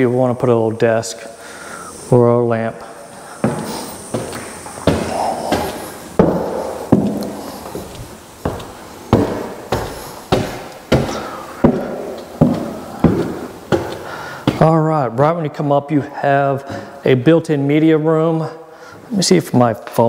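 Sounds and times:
footsteps on wooden stairs: 0:02.8 - 0:14.9.

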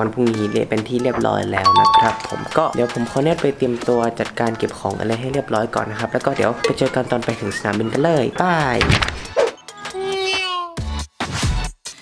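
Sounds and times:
young man sing-song speaking: 0:00.0 - 0:08.4
faint background music: 0:00.0 - 0:10.6.

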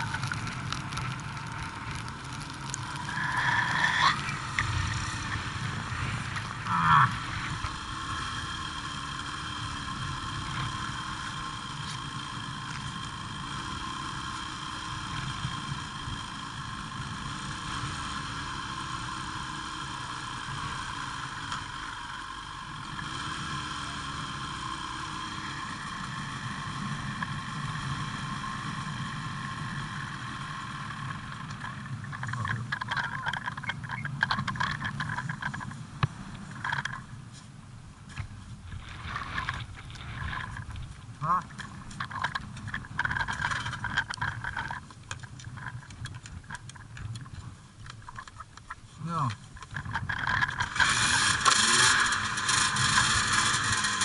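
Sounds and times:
snowmobile engine idling: 0:00.0 - 0:54.0.

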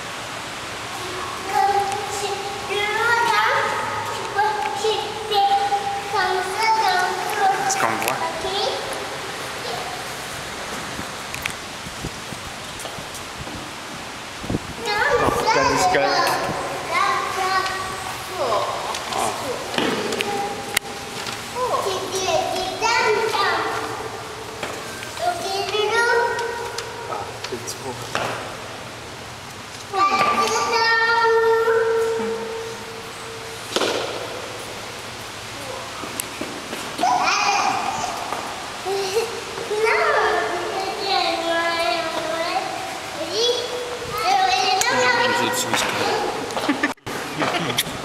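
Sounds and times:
children chattering and squealing: 0:14.7 - 0:27.4, 0:29.9 - 0:33.7, 0:37.0 - 0:47.0.

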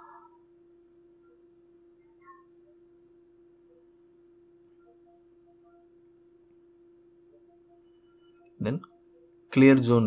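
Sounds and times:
faint chirp: 0:00.0 - 0:09.6
faint steady hum: 0:00.0 - 0:10.0.

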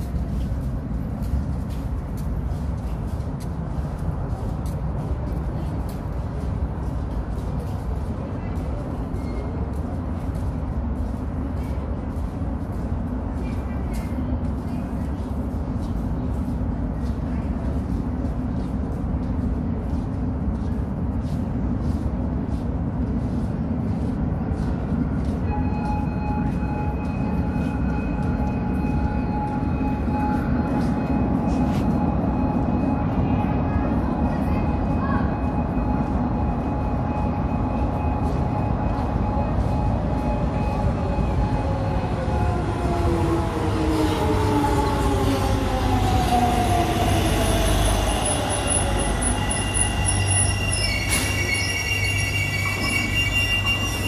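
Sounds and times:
faint voices of passengers: 0:00.0 - 0:54.0
train approaching through tunnel: 0:00.0 - 0:54.0.

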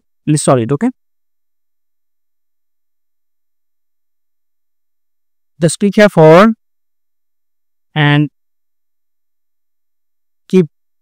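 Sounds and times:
faint steady electrical tone: 0:00.0 - 0:11.0.

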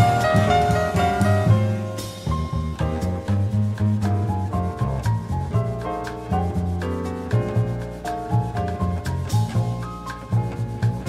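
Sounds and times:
bass line: 0:00.0 - 0:11.0
piano chords and melody: 0:00.0 - 0:11.0.

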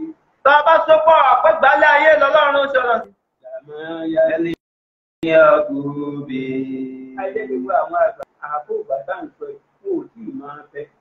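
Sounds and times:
man chanting: 0:05.2 - 0:09.0.

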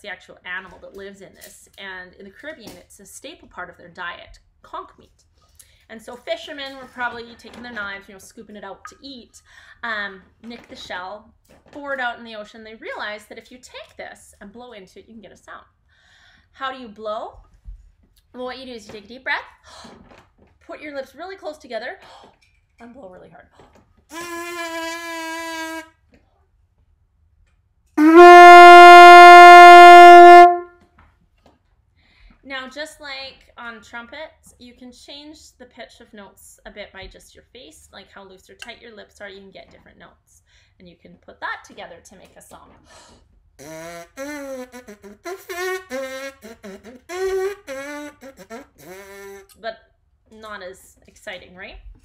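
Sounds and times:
conch shell blown: 0:24.1 - 0:25.9, 0:28.0 - 0:30.7, 0:43.6 - 0:49.4
lips buzzing a brassy tune: 0:28.0 - 0:30.7, 0:43.6 - 0:49.4.

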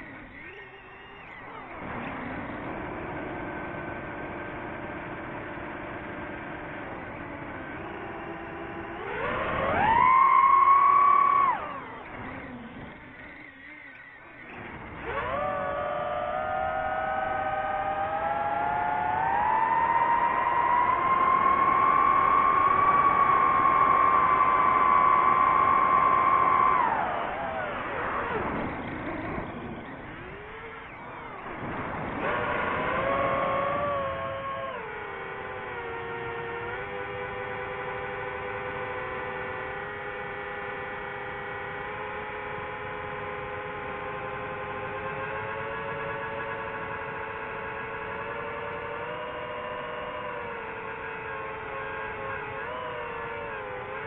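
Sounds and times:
drone propellers whining: 0:00.0 - 0:54.0.

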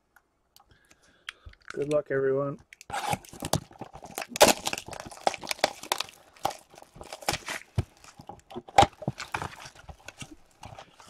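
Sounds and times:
cardboard packaging crackling: 0:02.9 - 0:11.0.

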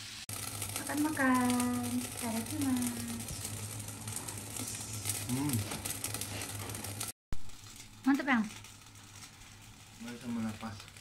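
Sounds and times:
meat sizzling on a grill plate: 0:00.0 - 0:11.0.

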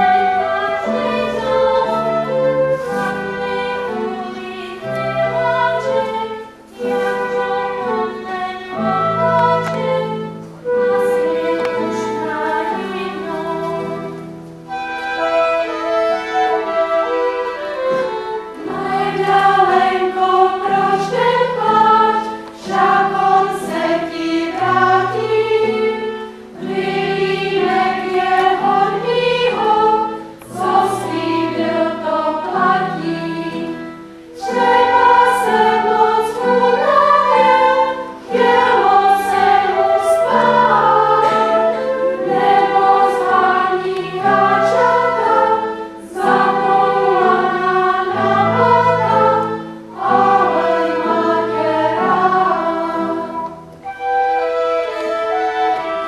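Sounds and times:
women's choir singing: 0:00.0 - 0:56.0.

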